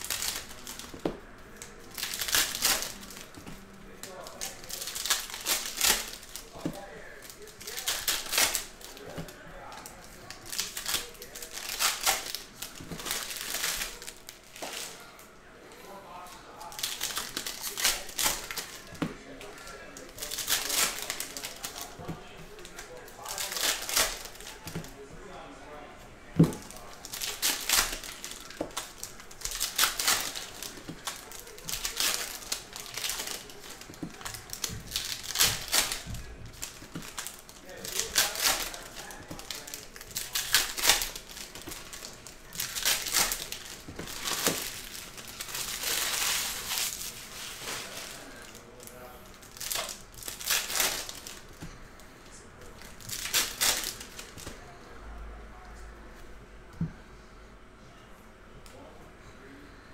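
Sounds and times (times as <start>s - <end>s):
foil wrappers crinkling: 0.0s - 54.6s.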